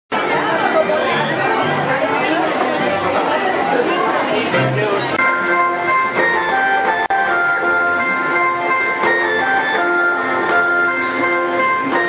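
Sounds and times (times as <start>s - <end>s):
crowd chatter in hall: 0.1s - 12.0s.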